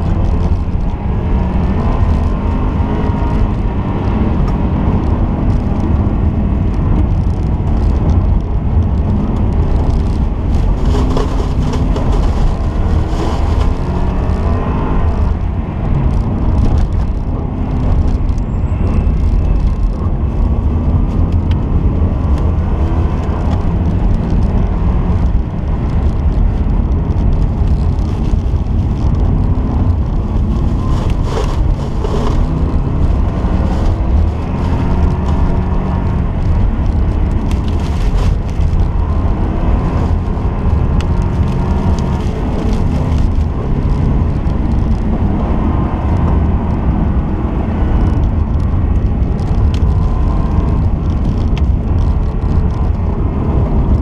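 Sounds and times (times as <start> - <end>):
car engine revving: 0.0 - 18.2, 19.0 - 51.8
heavy low rumble: 0.0 - 54.0.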